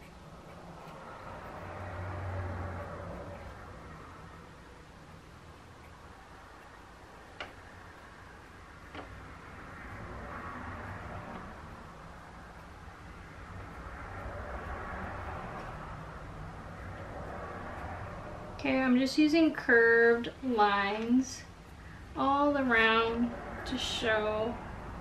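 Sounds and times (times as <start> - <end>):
low steady hum: 0.0 - 25.0.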